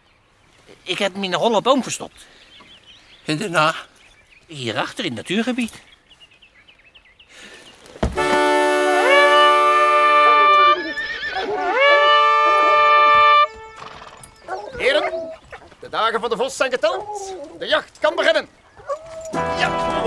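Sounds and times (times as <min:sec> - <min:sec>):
hunting horn notes: 0:08.0 - 0:15.1, 0:19.3 - 0:20.0
horses whinnying: 0:09.9 - 0:16.1, 0:16.7 - 0:17.9.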